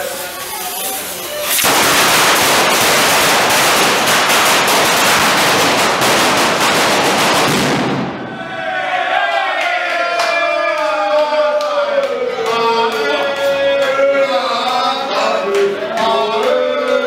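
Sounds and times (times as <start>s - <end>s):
crowd voices: 0.0s - 4.2s, 8.1s - 17.0s
string of firecrackers banging: 0.2s - 8.2s.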